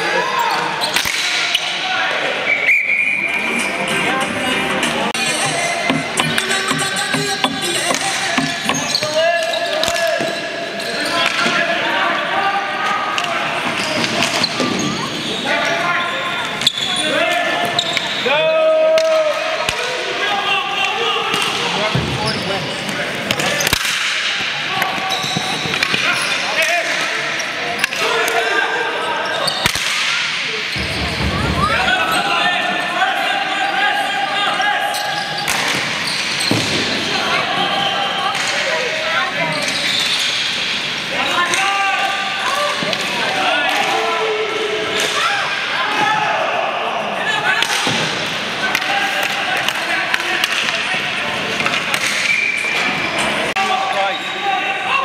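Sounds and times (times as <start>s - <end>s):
players and spectators shouting: 0.0s - 23.8s, 24.4s - 39.9s, 40.6s - 51.6s, 52.7s - 55.0s
sticks and ball knocking: 5.2s - 8.9s.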